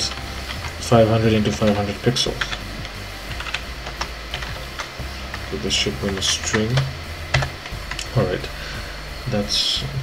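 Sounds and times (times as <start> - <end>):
computer keyboard keystrokes: 3.3 - 4.9.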